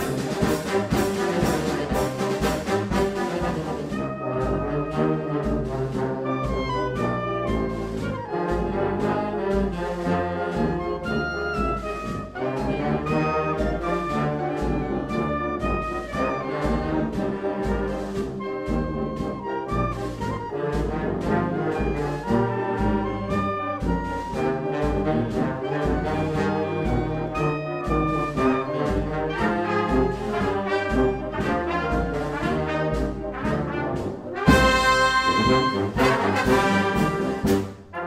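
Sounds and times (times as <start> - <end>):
brass band playing a march: 0.0 - 38.0
march percussion: 0.0 - 38.0.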